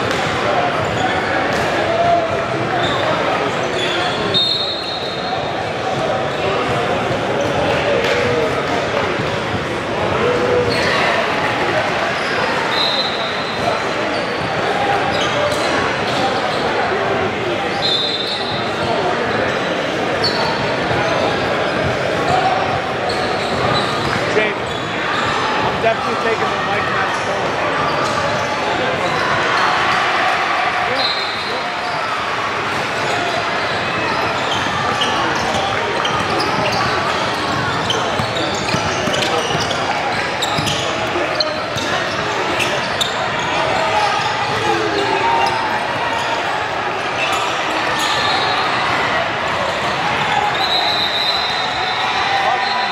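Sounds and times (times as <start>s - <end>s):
crowd chatter: 0.0s - 52.9s
sneaker squeaks: 0.1s - 1.8s, 2.6s - 7.8s, 10.3s - 11.2s, 11.9s - 17.0s, 17.6s - 22.3s, 23.0s - 30.0s, 30.9s - 49.0s, 49.7s - 52.9s.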